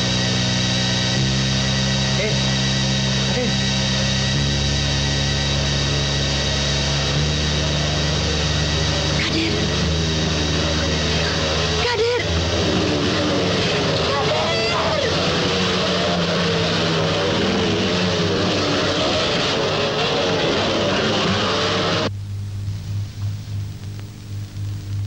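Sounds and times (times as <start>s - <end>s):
motorcycle engines revving: 0.0s - 22.1s
crowd shouting: 7.0s - 22.1s.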